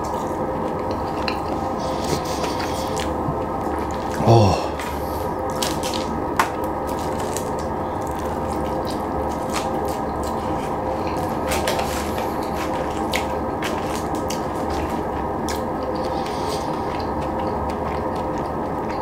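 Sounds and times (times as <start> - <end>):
steady background hum: 0.0 - 19.0
wet chewing and mouth sounds: 0.0 - 19.0.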